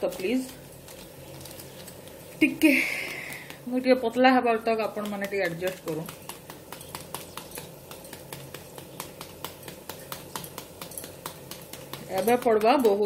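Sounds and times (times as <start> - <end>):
vegetables frying in a pan: 0.0 - 13.0.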